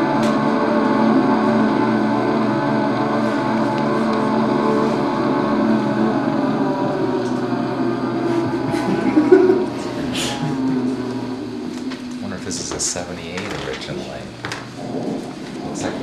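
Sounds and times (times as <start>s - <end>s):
droning music from record: 0.0s - 16.0s.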